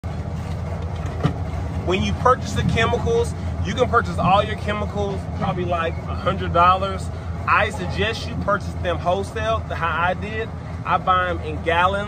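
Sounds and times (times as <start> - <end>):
motor vehicles rumbling: 0.0 - 12.0.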